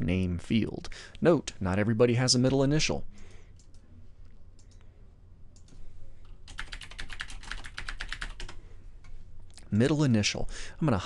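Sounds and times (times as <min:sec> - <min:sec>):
typing on computer keyboard: 0:06.4 - 0:08.6.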